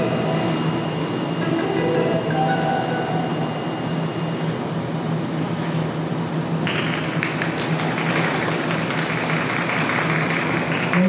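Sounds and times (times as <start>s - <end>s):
low hum: 0.0s - 9.7s
audience applauding: 6.7s - 11.0s.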